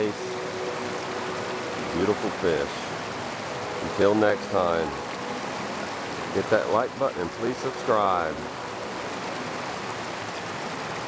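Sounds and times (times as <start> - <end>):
creek water rushing over concrete: 0.0 - 11.0
faint steady tone: 0.0 - 11.0.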